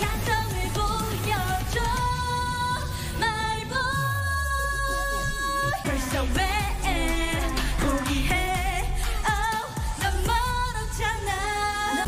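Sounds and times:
pop backing track: 0.0 - 12.0
woman singing with vibrato: 0.0 - 12.0.

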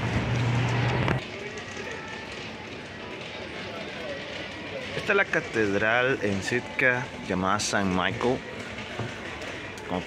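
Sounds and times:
outdoor street hum: 0.0 - 10.0
faint voices: 1.0 - 10.0.

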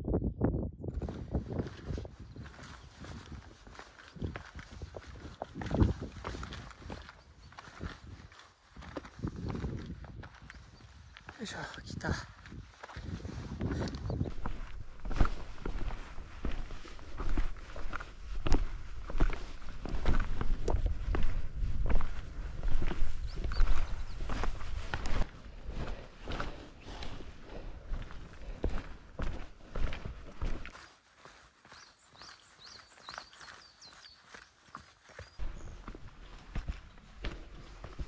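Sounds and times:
footsteps on mountain trail: 0.9 - 38.0.

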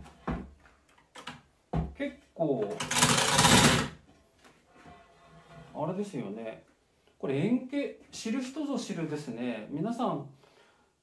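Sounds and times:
scale scraping on wooden table: 4.7 - 5.8.

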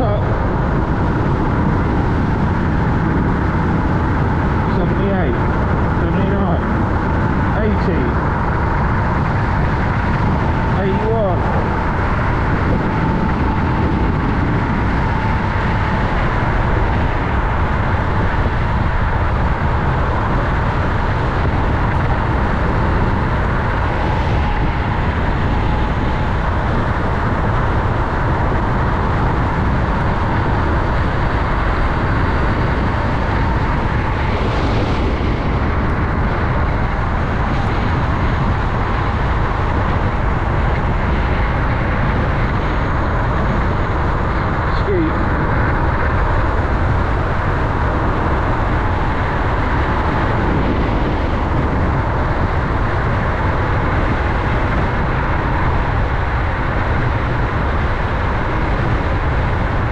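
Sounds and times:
faint high whine: 0.0 - 59.9
wind on microphone: 0.0 - 59.9.

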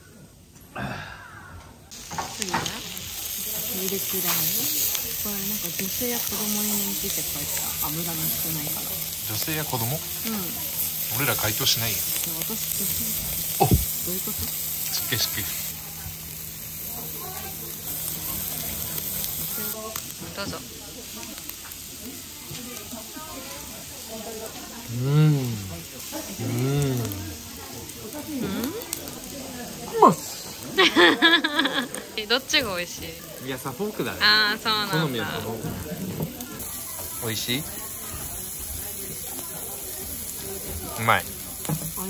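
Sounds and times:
meat sizzling on grill pan: 1.9 - 42.0.

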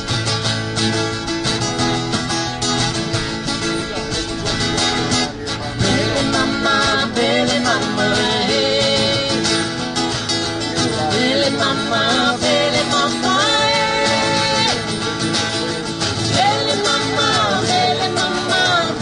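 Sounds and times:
acoustic guitars strumming: 0.0 - 19.0
person singing: 5.5 - 9.8, 10.8 - 15.2, 16.2 - 19.0.

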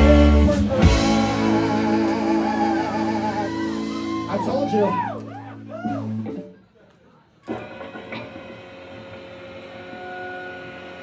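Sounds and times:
live rock band: 0.0 - 6.7
electric guitar chord ringing: 7.5 - 11.0.

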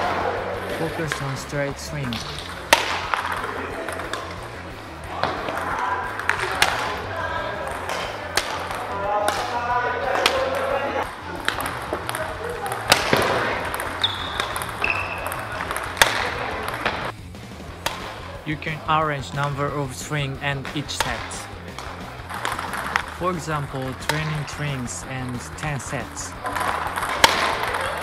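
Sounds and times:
racket striking shuttlecock: 2.4 - 4.3, 11.4 - 17.0, 26.4 - 28.0.

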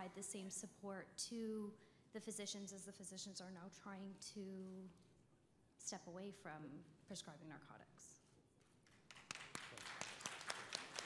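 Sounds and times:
audience applauding: 9.1 - 11.0.

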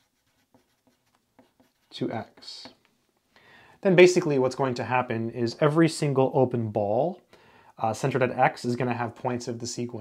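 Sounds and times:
pencil scratching on paper: 0.0 - 2.2.

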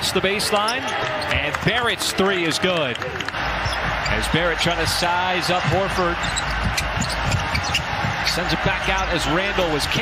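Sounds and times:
basketball bouncing on hardwood: 5.6 - 8.4.

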